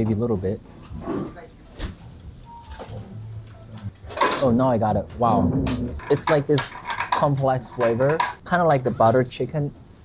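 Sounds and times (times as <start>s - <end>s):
person speaking: 4.4s - 9.8s.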